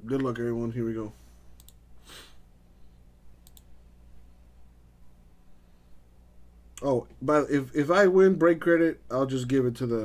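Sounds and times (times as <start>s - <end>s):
low electrical hum: 0.0s - 10.0s
computer mouse click: 1.6s - 1.8s, 3.4s - 3.7s
short breathy hiss: 2.0s - 2.5s.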